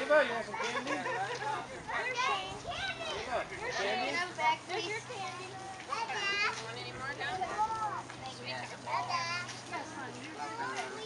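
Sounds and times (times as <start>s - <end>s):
young children chattering and calling out: 0.0s - 11.0s.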